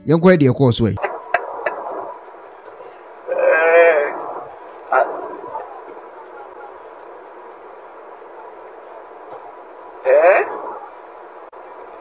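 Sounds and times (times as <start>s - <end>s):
bus road and cabin noise: 0.9s - 12.0s
drawn-out vocal cry: 3.2s - 5.8s.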